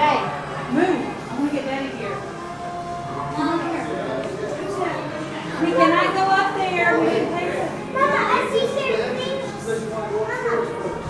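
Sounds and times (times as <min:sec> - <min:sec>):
children chattering and calling out: 0:03.3 - 0:11.0.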